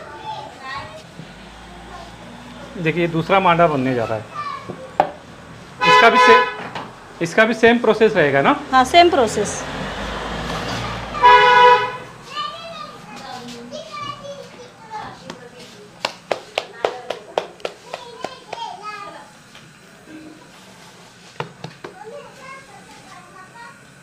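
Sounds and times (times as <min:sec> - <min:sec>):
vehicle horn honk: 0:05.8 - 0:06.8, 0:11.2 - 0:12.2
hands slapping dough: 0:16.0 - 0:18.7.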